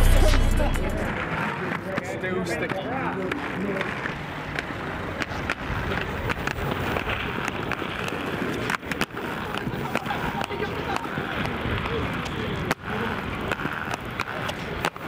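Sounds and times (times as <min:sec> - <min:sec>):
people's voices: 0:00.0 - 0:06.3, 0:09.2 - 0:13.5
skate wheels rolling on paving: 0:01.1 - 0:15.0
skates clacking on ledge: 0:01.2 - 0:15.0.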